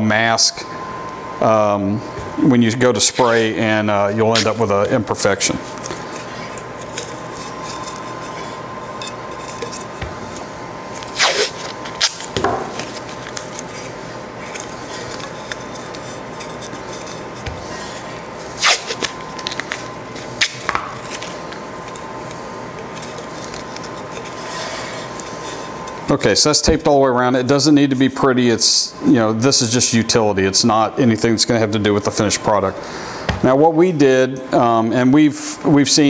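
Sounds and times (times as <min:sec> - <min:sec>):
steady hum: 0:00.0 - 0:36.0
tape peeling off roll: 0:05.7 - 0:25.8.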